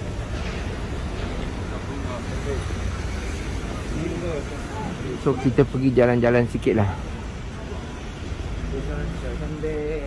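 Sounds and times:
faint indistinct voices: 0.0s - 10.0s
road traffic rumble: 0.0s - 10.0s.

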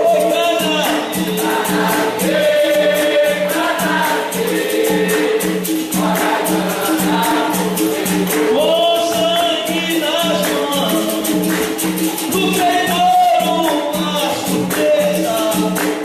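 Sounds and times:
fast jingling percussion: 0.0s - 16.0s
group of voices singing: 0.0s - 16.0s.

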